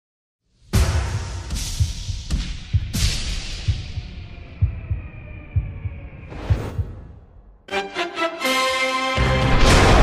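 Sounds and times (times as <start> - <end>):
deep bass thumps: 0.8 - 7.4.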